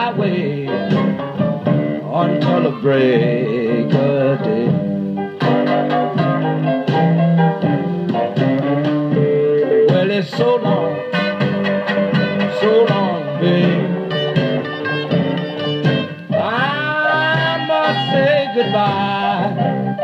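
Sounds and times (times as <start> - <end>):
blues band playing: 0.0 - 20.0
drums: 0.0 - 20.0
piano: 0.0 - 20.0
slide guitar: 0.0 - 20.0
harmonica: 2.4 - 20.0.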